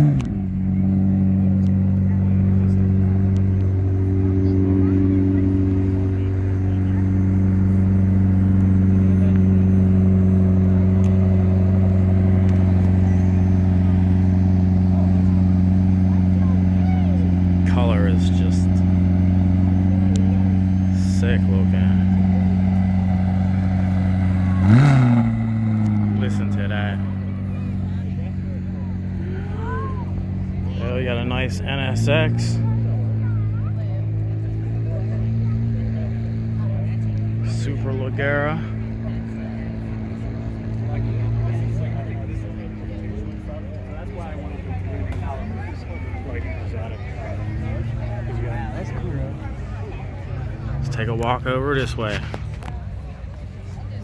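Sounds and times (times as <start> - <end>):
car engine idling: 0.0 - 54.0
engine revving: 0.0 - 54.0.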